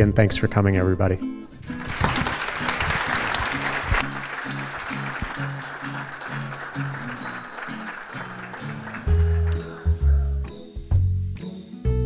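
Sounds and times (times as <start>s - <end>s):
audience applauding: 1.7s - 10.0s.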